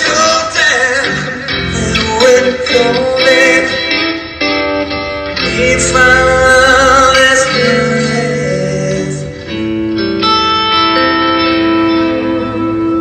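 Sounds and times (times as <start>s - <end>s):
electric guitar lead: 0.0s - 13.0s
looped backing music: 0.0s - 13.0s.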